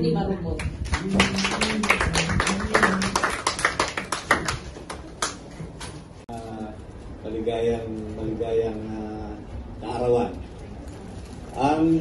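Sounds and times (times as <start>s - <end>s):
people clapping: 0.6s - 5.8s.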